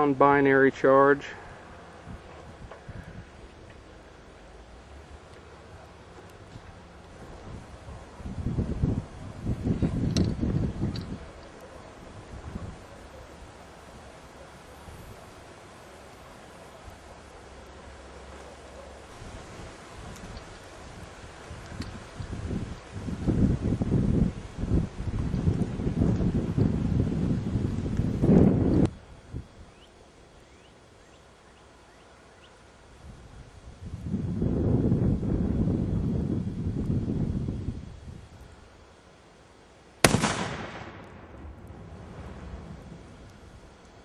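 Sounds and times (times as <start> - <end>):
low gusting noise: 0.0 - 30.5, 31.7 - 39.0, 40.0 - 44.0
explosion bang: 40.0 - 42.7.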